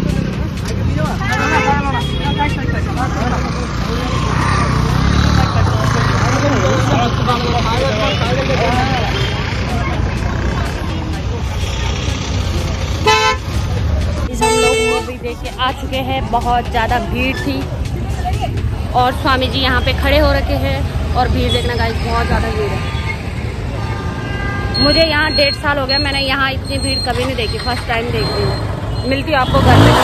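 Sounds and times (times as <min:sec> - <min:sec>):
crowd chatter: 0:00.0 - 0:28.9
street traffic: 0:00.0 - 0:30.0
vehicle horn honking: 0:01.3 - 0:02.6, 0:13.0 - 0:13.5, 0:14.4 - 0:15.2.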